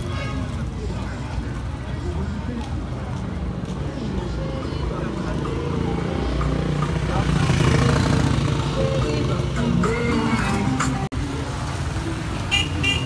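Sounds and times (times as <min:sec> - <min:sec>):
people's voices: 0:00.0 - 0:13.0.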